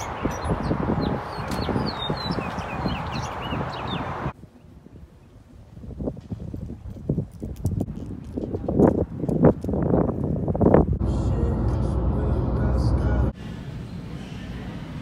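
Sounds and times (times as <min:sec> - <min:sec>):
small birds chirping: 0:00.0 - 0:05.4.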